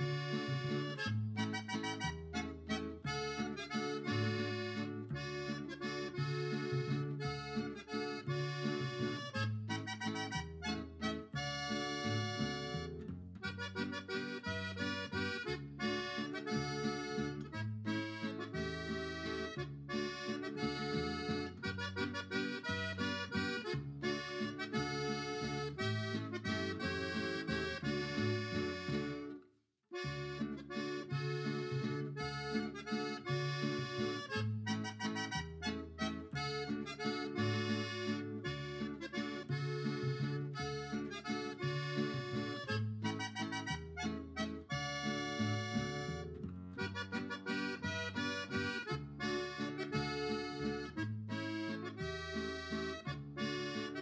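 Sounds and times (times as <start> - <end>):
accordion music with steady beat: 0.0 - 54.0.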